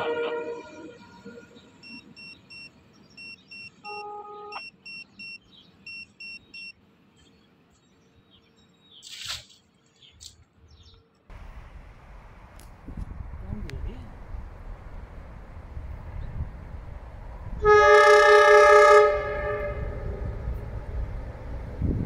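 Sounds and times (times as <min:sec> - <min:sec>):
brief lower tone: 0:01.8 - 0:06.7
short high beeps: 0:01.8 - 0:06.7.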